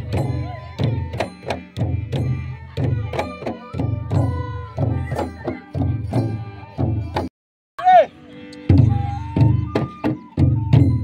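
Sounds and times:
bamboo flute: 0.0s - 11.0s.

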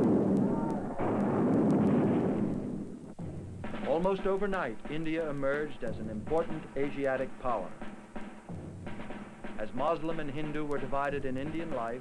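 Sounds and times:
cannon shots with echo: 0.0s - 3.2s.

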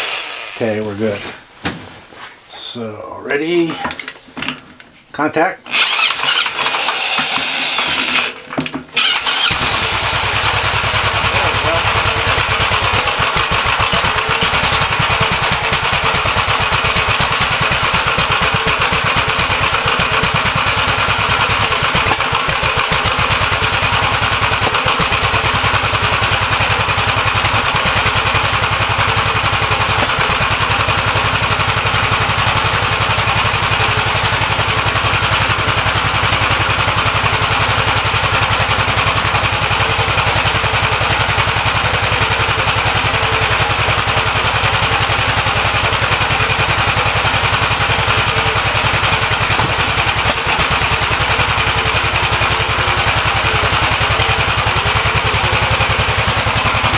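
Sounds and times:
electric drill whine: 0.0s - 0.7s, 5.7s - 15.0s
engine running: 5.7s - 56.9s.

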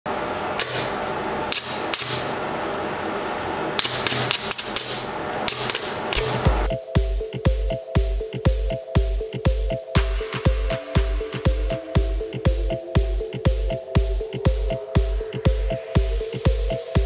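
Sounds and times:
electronic dance music: 6.2s - 17.0s.

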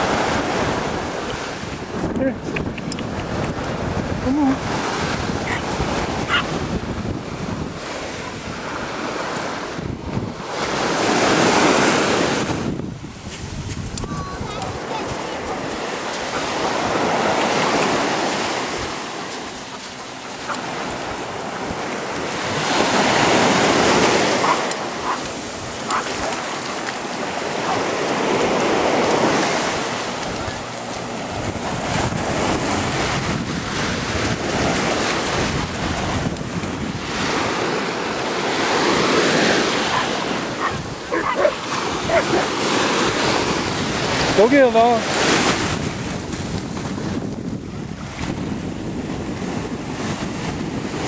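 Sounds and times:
ocean surf breaking: 0.0s - 51.0s
wind on microphone: 0.0s - 51.0s.

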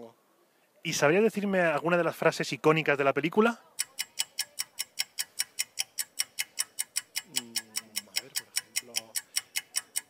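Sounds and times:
clock ticking fast: 3.7s - 10.0s.

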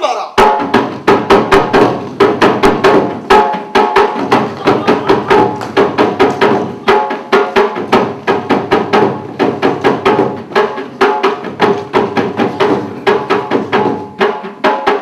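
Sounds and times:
drums beaten fast: 0.0s - 15.0s.

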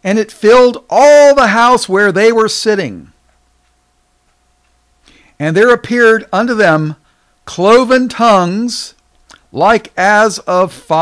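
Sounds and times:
man speaking: 0.0s - 3.2s, 5.4s - 11.0s
faint steady hum: 0.0s - 11.0s.

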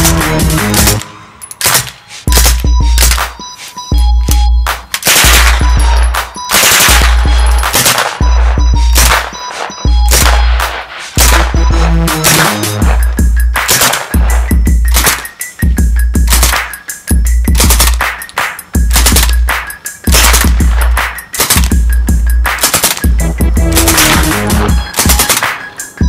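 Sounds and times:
drum and bass music: 0.0s - 26.0s
suppressed automatic gunfire: 6.5s - 9.3s, 18.9s - 19.5s.

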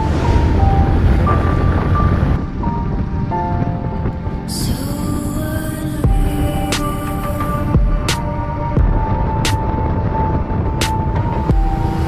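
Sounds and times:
motorcycle engine rumble: 0.0s - 12.0s
music with long held notes: 0.0s - 12.0s
wind: 0.0s - 12.0s.

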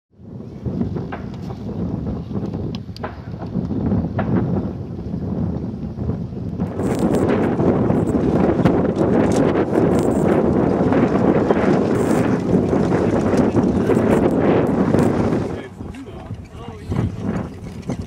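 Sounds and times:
wind buffeting microphone: 0.1s - 18.0s.

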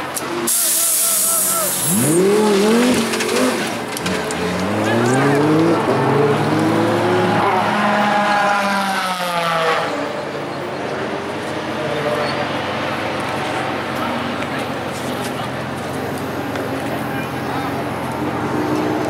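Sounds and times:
race car engine revving: 1.4s - 10.2s.

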